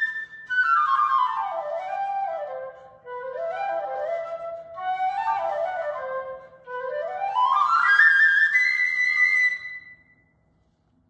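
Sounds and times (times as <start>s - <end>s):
solo flute: 0.0s - 10.3s.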